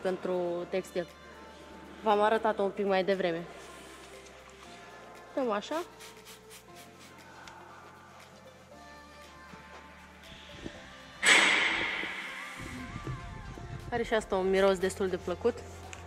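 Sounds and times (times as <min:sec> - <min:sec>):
quiet background music: 0:00.0 - 0:16.0
spray bottle spritz: 0:05.8 - 0:07.3.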